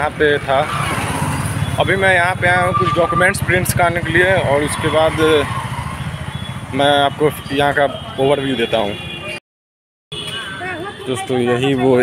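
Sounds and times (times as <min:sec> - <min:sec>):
road noise: 0:00.0 - 0:09.4, 0:10.1 - 0:12.0
motorcycle engine running: 0:01.4 - 0:07.5
man talking: 0:01.8 - 0:05.5, 0:06.7 - 0:09.0.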